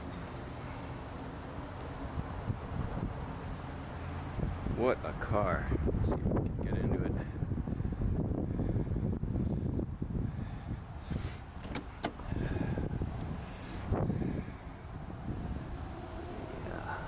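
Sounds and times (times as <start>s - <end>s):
sharp clicks: 1.0s - 2.2s
wind on microphone: 4.3s - 17.0s
car door being opened: 11.6s - 12.6s
microphone handling rumble: 11.6s - 14.5s.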